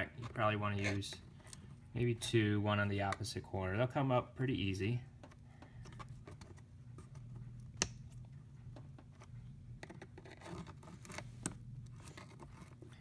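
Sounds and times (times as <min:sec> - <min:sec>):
screwdriver scraping plastic: 0:09.0 - 0:12.9.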